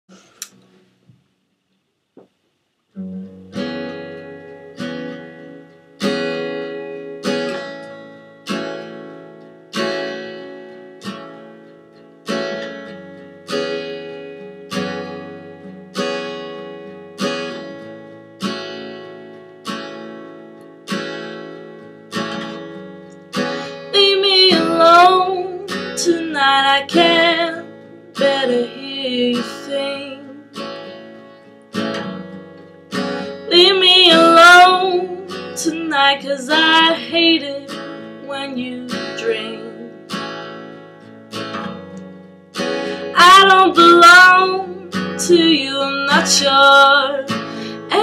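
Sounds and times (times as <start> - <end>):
acoustic guitar chords strummed: 2.9 - 48.0
woman singing: 23.6 - 30.6, 33.2 - 40.0, 43.0 - 48.0.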